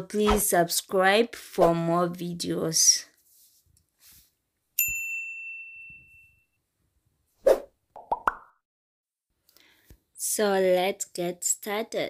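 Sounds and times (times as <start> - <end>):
clear ding: 4.8 - 6.5.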